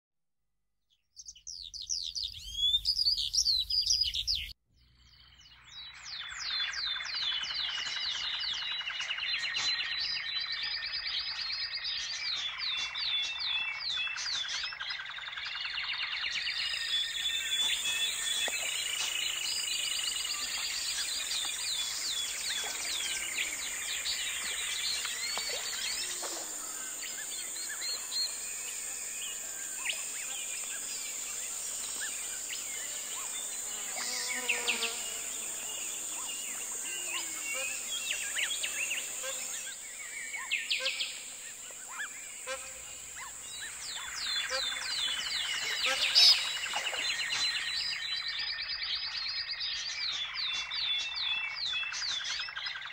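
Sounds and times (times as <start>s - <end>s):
chorus of songbirds: 0.9s - 52.9s
loud high bird chirping: 1.2s - 52.9s
high-pitched insect trill: 16.7s - 48.3s.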